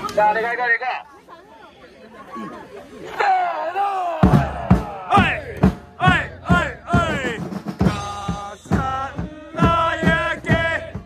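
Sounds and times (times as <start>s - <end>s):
football supporters chattering: 0.0s - 11.0s.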